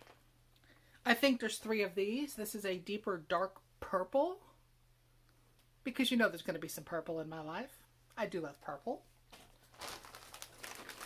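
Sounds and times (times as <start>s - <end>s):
plastic bag crinkling: 9.3s - 11.0s.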